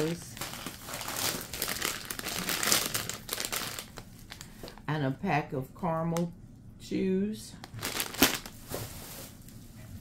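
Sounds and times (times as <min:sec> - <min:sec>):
plastic bags crinkling: 0:00.0 - 0:04.9, 0:07.6 - 0:09.4.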